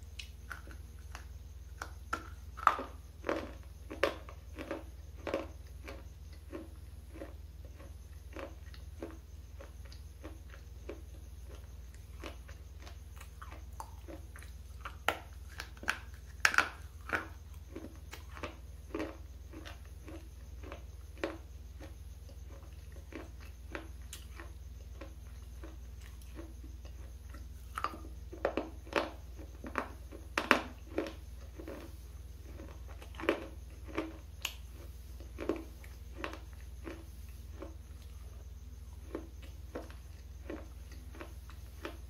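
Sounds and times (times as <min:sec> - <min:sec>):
crunching and chewing hard bar: 0:00.0 - 0:42.0.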